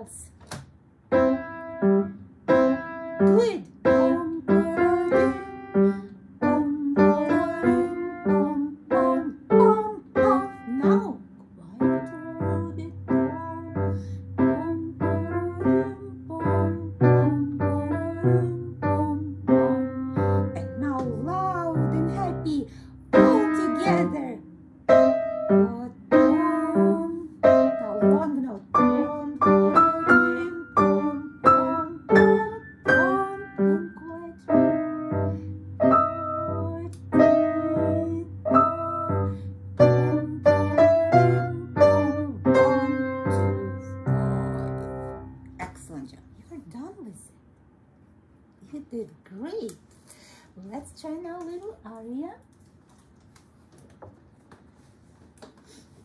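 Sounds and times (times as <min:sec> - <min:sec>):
child playing piano march: 0:01.1 - 0:11.2, 0:11.8 - 0:45.7.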